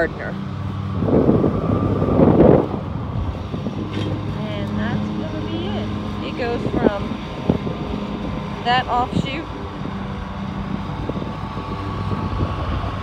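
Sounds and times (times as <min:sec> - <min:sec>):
low engine drone: 0:00.0 - 0:13.0
wind gust on microphone: 0:00.0 - 0:13.0.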